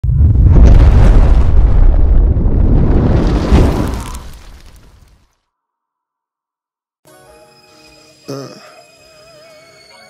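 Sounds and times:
deep rumbling blast: 0.0 - 4.4.

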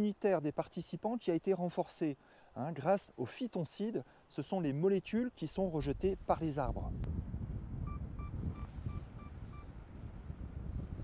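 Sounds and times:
wind rumble on microphone: 5.6 - 11.0.

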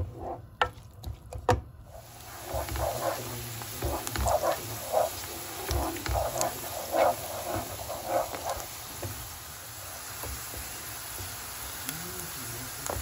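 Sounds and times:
wooden spoon scraping pan: 0.0 - 0.5, 1.9 - 9.3
onions sizzling in oil: 1.9 - 13.0.

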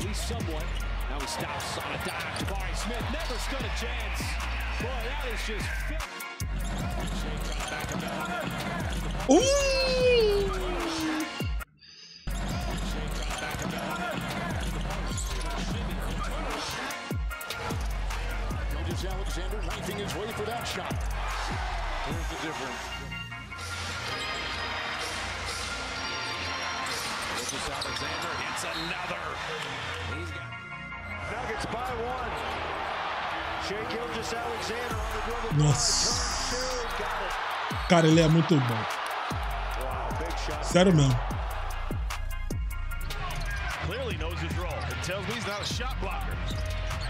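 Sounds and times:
background music: 0.0 - 11.7, 12.3 - 47.0
broadcast voice: 35.5 - 37.0, 37.9 - 38.8, 40.7 - 41.2.

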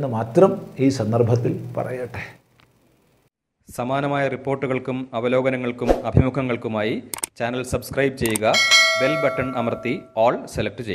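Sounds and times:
man speaking: 7.7 - 10.6
notification bell chime: 8.6 - 10.1.

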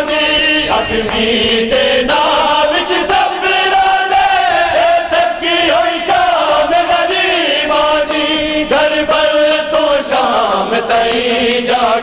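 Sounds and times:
group of men chanting: 0.0 - 12.0.

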